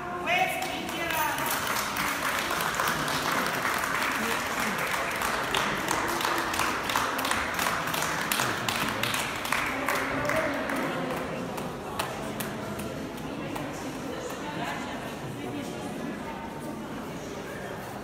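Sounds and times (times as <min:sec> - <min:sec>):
audience applauding: 0:00.7 - 0:11.4.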